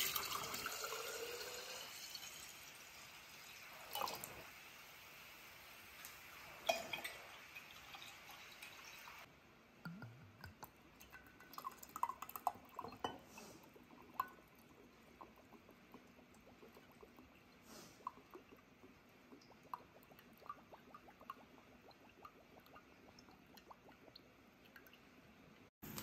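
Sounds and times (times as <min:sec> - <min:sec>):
liquid pouring into glass jar: 0:00.0 - 0:02.3, 0:09.9 - 0:25.1
liquid dripping: 0:09.9 - 0:26.0
glass clink: 0:12.8 - 0:13.4.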